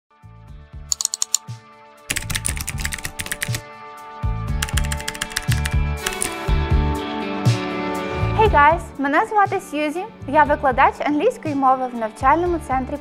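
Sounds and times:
keyboard typing clicks: 0.9s - 1.4s, 2.1s - 3.6s, 4.6s - 6.4s.

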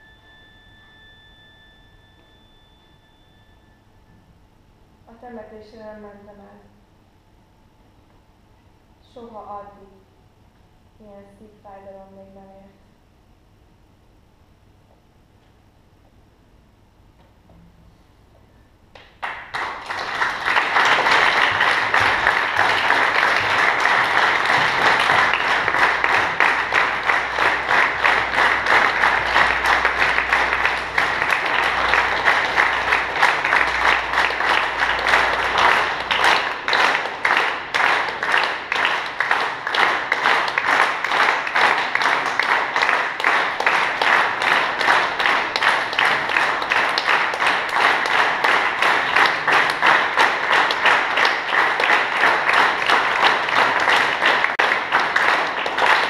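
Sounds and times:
audience applause: 19.2s - 56.0s.

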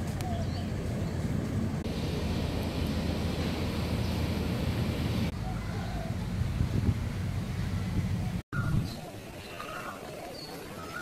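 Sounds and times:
wind buffeting microphone: 0.0s - 9.6s
outdoor background noise: 0.0s - 11.0s.

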